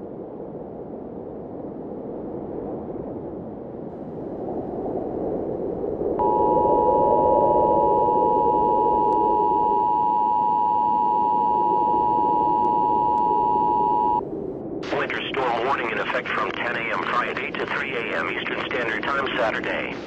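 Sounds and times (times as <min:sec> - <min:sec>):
harsh two-tone alert beep: 0:06.2 - 0:14.2.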